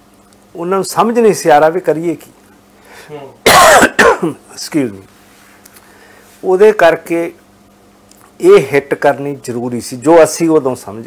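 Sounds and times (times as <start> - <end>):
man coughing: 3.4 - 4.5.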